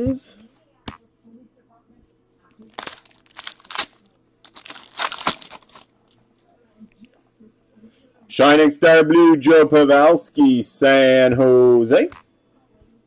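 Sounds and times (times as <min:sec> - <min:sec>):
foil wrapper crinkling and tearing: 0:02.7 - 0:05.9.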